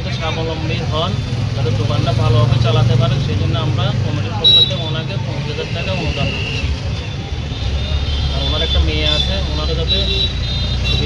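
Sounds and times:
man talking: 0.0s - 6.6s, 8.3s - 10.3s
road traffic rumble: 0.0s - 11.0s.

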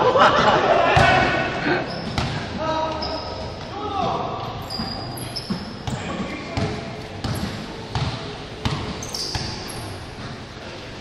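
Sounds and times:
basketball bouncing on hard court: 2.0s - 2.4s, 4.7s - 10.4s.

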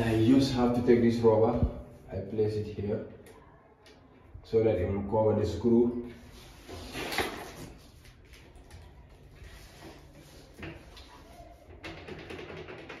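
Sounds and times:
hands clicking and knocking on door frame: 11.8s - 13.0s.

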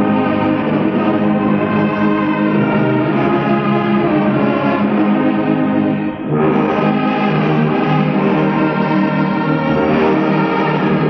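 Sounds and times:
orchestra playing hymn chords: 0.0s - 11.0s.

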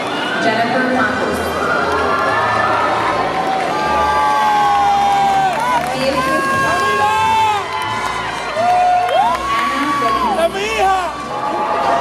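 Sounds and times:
crowd cheering and calling out: 0.0s - 12.0s.

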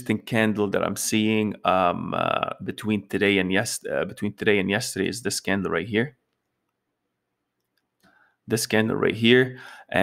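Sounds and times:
man speaking: 0.0s - 6.2s, 8.5s - 10.0s.

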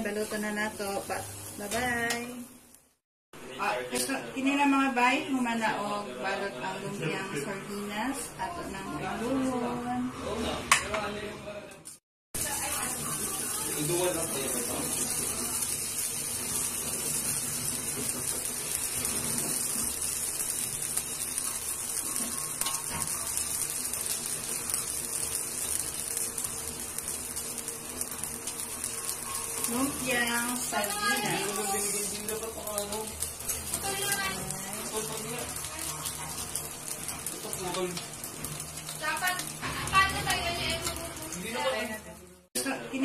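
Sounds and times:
food sizzling in oil: 0.0s - 10.9s, 11.9s - 43.0s.

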